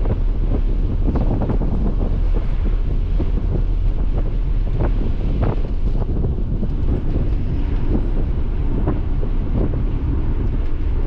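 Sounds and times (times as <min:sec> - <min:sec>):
road and wind rumble: 0:00.0 - 0:11.0
wind buffeting microphone: 0:00.0 - 0:11.0.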